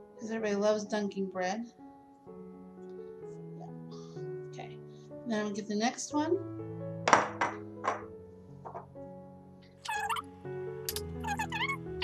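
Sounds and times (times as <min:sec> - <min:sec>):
background music with held notes: 0:00.0 - 0:12.0
ceramic bowl knocking on stone: 0:07.1 - 0:08.9.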